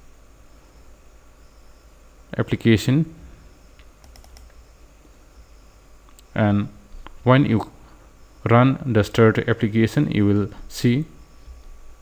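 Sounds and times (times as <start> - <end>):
faint mouse clicks: 3.8 - 4.6.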